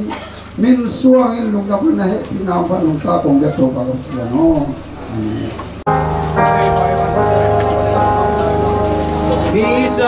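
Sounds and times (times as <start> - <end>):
hymn music with held chords: 4.5 - 10.0.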